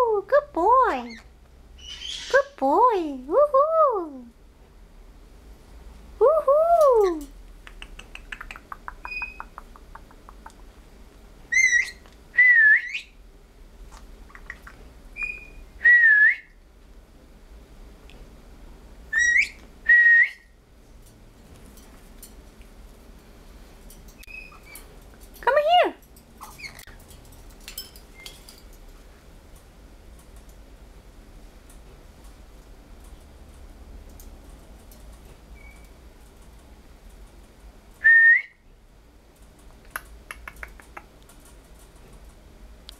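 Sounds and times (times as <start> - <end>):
parrot whistling: 1.8 - 2.4, 9.1 - 9.4, 11.5 - 13.2, 15.2 - 16.5, 19.1 - 20.5.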